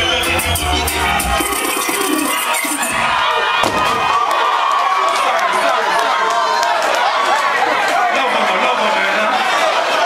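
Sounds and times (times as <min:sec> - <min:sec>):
reggae band with heavy bass: 0:00.0 - 0:04.0
crowd cheering and shouting: 0:00.0 - 0:10.0.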